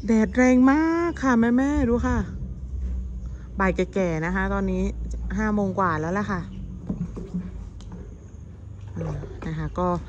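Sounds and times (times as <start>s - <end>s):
woman speaking: 0.0s - 2.4s, 3.6s - 6.6s, 9.0s - 10.0s
low rumble: 0.0s - 8.8s.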